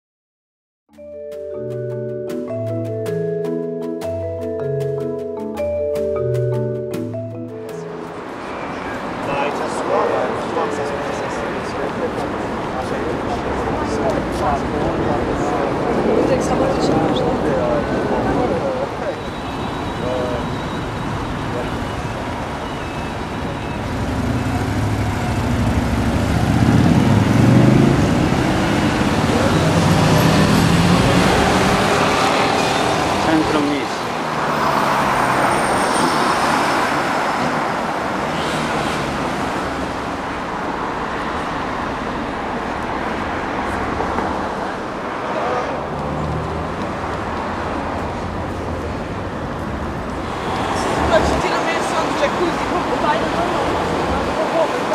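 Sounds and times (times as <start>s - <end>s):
cars driving along street: 1.0s - 54.9s.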